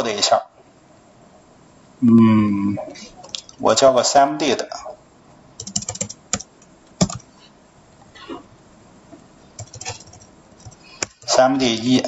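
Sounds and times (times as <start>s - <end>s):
computer keyboard typing: 5.6s - 7.3s, 9.6s - 11.4s.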